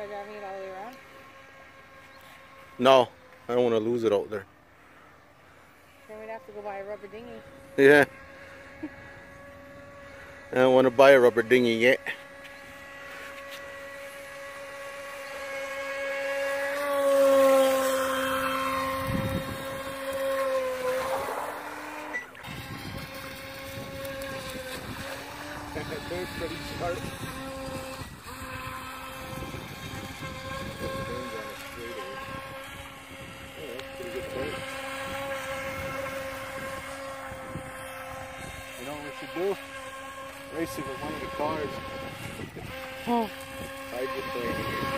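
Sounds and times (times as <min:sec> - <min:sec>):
rc boat motor whining: 0:00.0 - 0:44.9.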